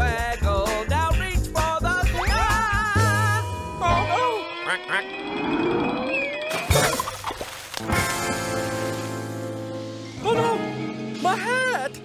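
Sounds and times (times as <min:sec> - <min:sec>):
cartoon duck quacking: 0:04.0 - 0:05.1
slowly rising tone: 0:04.4 - 0:06.5.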